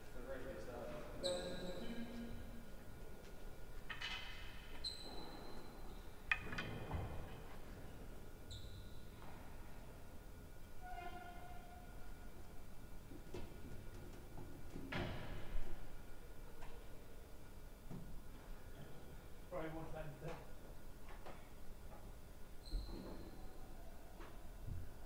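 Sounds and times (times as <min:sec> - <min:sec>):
shoes squeaking on court: 0:04.8 - 0:06.0, 0:22.6 - 0:23.4.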